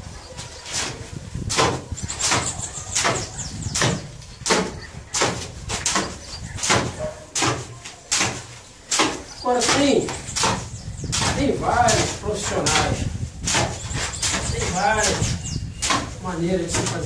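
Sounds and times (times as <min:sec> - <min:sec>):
hoe blade scraping concrete: 0:00.6 - 0:17.0.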